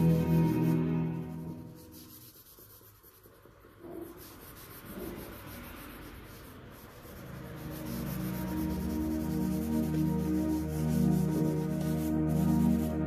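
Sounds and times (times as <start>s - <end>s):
background music: 0.0s - 2.3s, 7.4s - 13.0s
charcoal scratching on paper: 0.0s - 13.0s.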